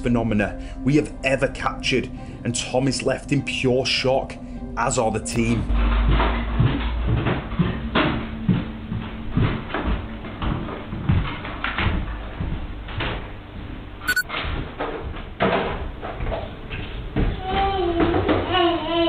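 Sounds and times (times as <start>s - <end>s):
footsteps on wooden stairs: 6.1s - 13.8s.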